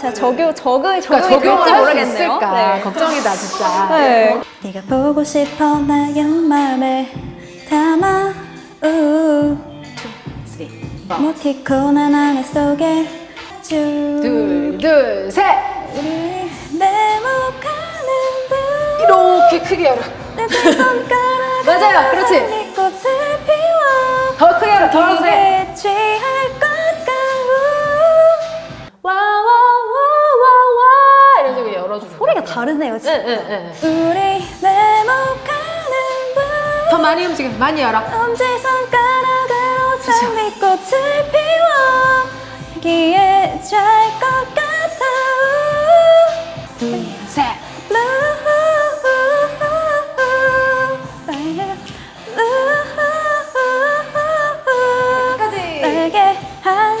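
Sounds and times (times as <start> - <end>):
woman singing slow melody: 3.5 - 31.6, 33.8 - 57.0
woman singing long held vowel: 15.9 - 19.7.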